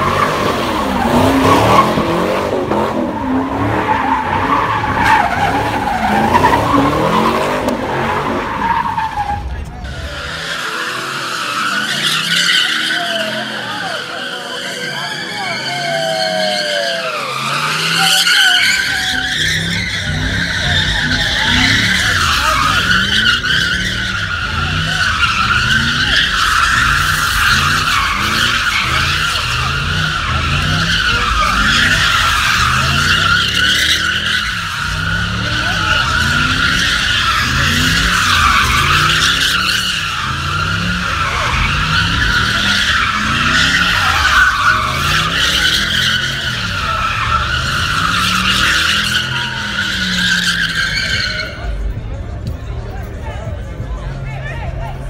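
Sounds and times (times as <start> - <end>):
car engine revving: 0.0 - 16.6, 17.2 - 53.8
tyres squealing: 0.0 - 51.9.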